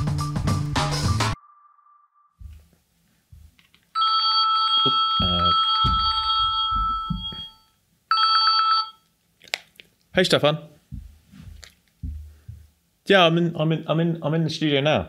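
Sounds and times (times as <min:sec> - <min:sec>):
mobile phone ringtone: 0:04.0 - 0:09.0
handling thumps and rustling: 0:10.9 - 0:12.7.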